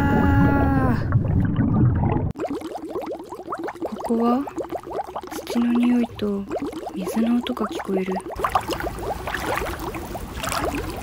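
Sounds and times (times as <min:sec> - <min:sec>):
water bubbling and trickling: 0:00.0 - 0:11.0.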